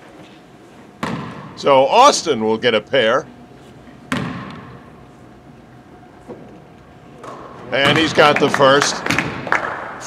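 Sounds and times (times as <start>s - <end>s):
low hall background: 0.0s - 10.0s
sharp thump echoing in a gymnasium: 1.0s - 1.6s, 4.1s - 5.0s, 7.2s - 10.0s.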